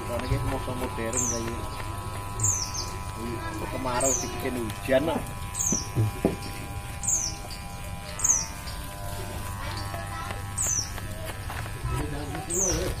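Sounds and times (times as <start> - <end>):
electric hair clipper buzzing: 0.0 - 13.0.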